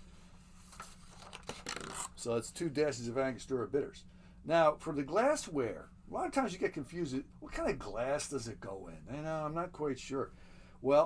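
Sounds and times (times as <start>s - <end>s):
paper rustling and crinkling: 0.5s - 2.2s.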